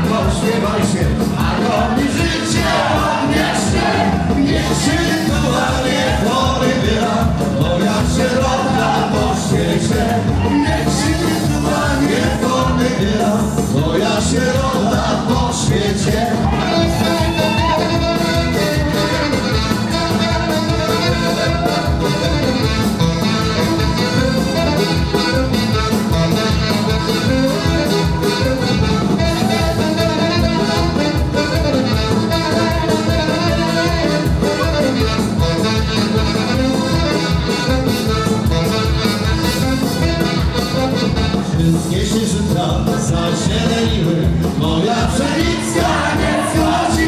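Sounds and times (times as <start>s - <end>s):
live dance band playing: 0.0s - 47.0s.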